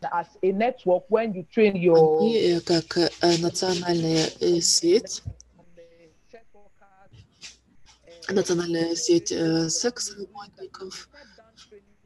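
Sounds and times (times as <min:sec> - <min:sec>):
person talking quietly: 0:02.0 - 0:05.3.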